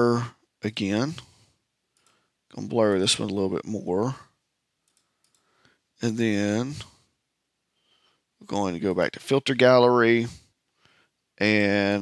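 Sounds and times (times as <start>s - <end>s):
person speaking: 0.0s - 1.4s, 2.5s - 4.4s, 6.0s - 7.1s, 8.4s - 10.5s, 11.4s - 12.0s
faint computer mouse clicks: 1.9s - 2.2s, 4.8s - 5.8s.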